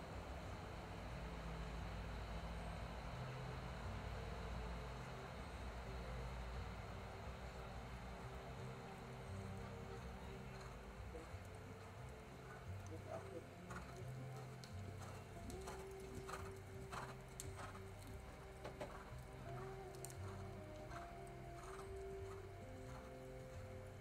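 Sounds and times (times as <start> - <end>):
background music with held notes: 5.9 - 24.0
horse hoofbeats on sand: 10.6 - 23.7.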